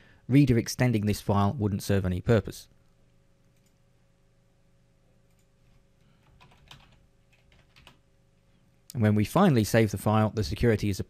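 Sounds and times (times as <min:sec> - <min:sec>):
faint keyboard typing: 0:03.4 - 0:03.8, 0:05.2 - 0:08.0.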